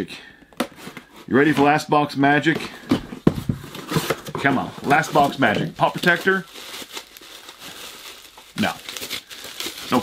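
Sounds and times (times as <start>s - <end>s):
bubble wrap crinkling: 3.8s - 10.0s.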